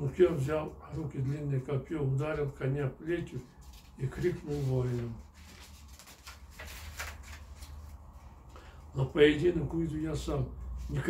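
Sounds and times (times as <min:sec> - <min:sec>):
low steady hum: 0:00.0 - 0:11.0
paper pages rustling: 0:03.4 - 0:08.5.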